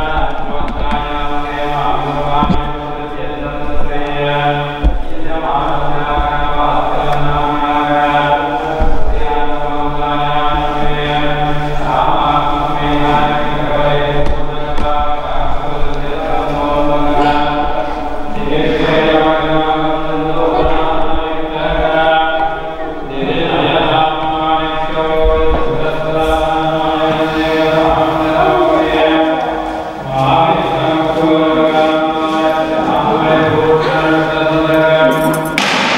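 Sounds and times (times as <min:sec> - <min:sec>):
person chanting mantra: 0:00.0 - 0:35.9.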